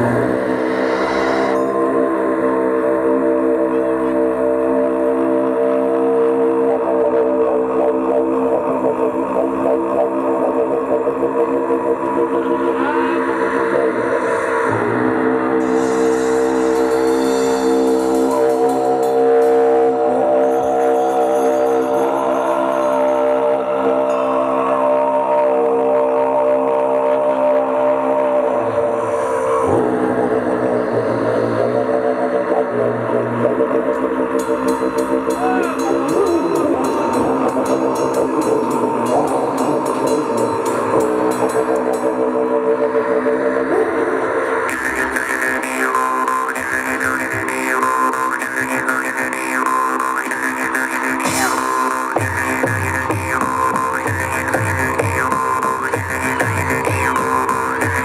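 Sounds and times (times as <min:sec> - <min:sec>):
cymbals shimmering: 0:00.0 - 0:04.6, 0:13.1 - 0:26.3, 0:34.1 - 0:43.5
didgeridoo droning: 0:00.0 - 0:58.0.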